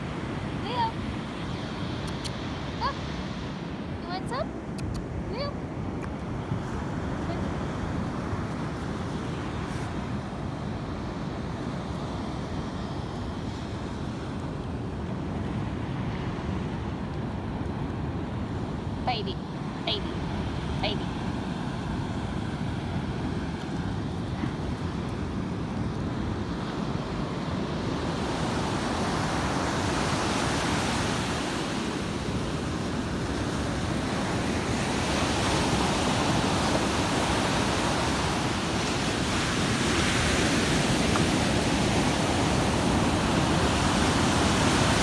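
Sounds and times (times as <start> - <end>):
ocean surf breaking on shore: 0.0 - 45.0
wind rumbling on microphone: 0.0 - 45.0.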